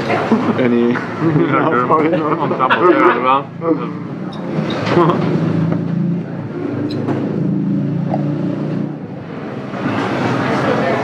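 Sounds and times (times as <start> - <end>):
rough noisy sound: 0.0 - 11.0
vehicle engine humming: 3.3 - 11.0.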